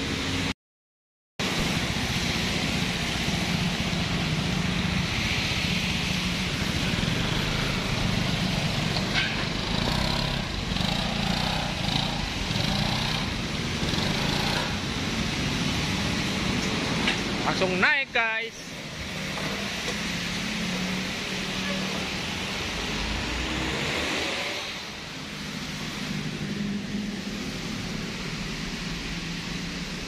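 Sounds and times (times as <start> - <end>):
scooter engine running: 6.4 - 15.1.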